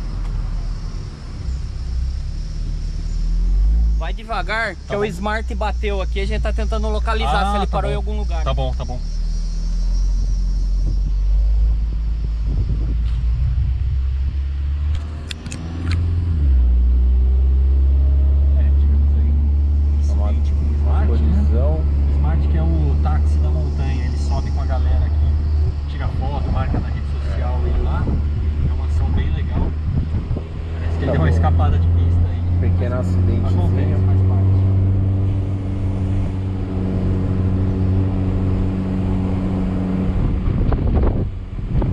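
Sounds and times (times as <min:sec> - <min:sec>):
car engine and road noise: 0:00.0 - 0:41.9.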